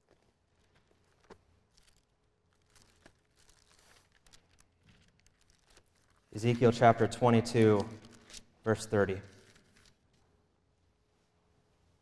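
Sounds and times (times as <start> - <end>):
paper pages rustling: 0.0 - 10.3.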